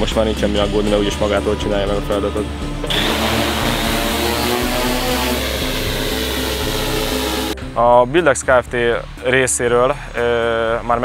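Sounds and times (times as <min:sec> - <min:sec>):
drone rotors whirring: 0:02.8 - 0:07.6.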